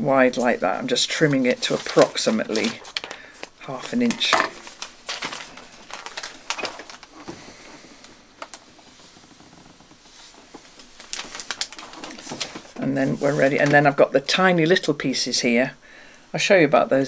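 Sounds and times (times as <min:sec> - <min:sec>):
fabric strips rustling: 0:00.2 - 0:14.4
paper and scissors handled: 0:01.2 - 0:03.2, 0:04.0 - 0:07.1, 0:10.7 - 0:14.0.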